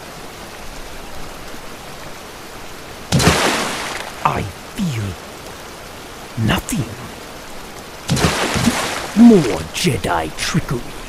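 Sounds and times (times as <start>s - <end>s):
steady rain: 0.0s - 11.0s.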